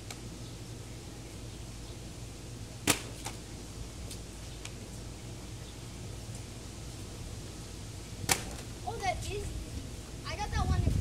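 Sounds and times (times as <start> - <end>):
plastic bottle hitting asphalt: 2.8 - 3.4, 8.3 - 8.7.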